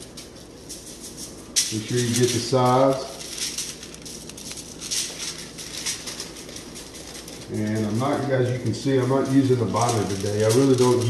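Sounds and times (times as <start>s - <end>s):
foil rustling: 0.0s - 11.0s
granules pattering onto foil: 0.0s - 11.0s
shaker bottle shaken: 0.0s - 11.0s.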